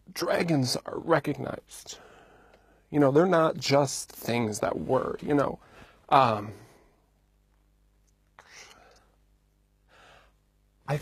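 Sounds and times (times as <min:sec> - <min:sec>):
faint room hum: 0:00.0 - 0:11.0
man breathing: 0:01.9 - 0:02.9, 0:05.6 - 0:07.1, 0:08.4 - 0:09.2, 0:09.8 - 0:10.4.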